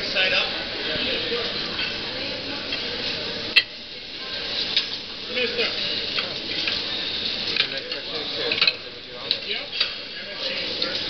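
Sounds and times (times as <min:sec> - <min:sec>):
background hubbub: 0:00.0 - 0:11.0
pans and utensils clinking: 0:01.4 - 0:11.0.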